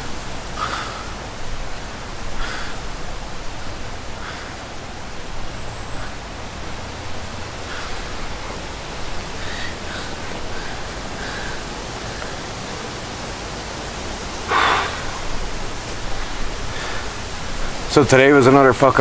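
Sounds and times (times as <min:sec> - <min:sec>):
steady outdoor hiss: 0:00.0 - 0:19.0.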